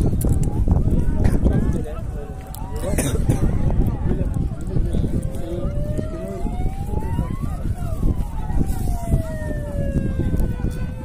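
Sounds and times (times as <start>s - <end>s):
crowd chatter: 0.0s - 11.0s
siren wailing: 4.9s - 11.0s.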